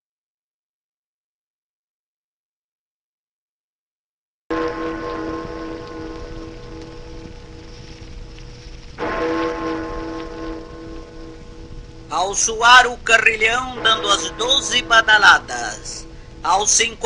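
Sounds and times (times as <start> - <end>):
deep clock chime strokes: 4.5 - 17.0
steady hiss and low hum: 4.5 - 17.0.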